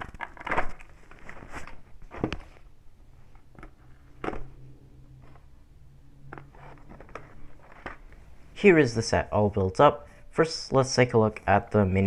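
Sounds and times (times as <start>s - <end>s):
plastic crinkling: 0.0s - 2.7s
faint low hum: 0.0s - 12.0s.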